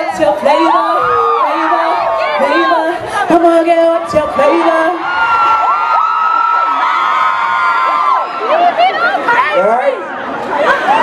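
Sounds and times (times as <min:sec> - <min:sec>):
concert audience screaming and cheering: 0:00.0 - 0:11.0.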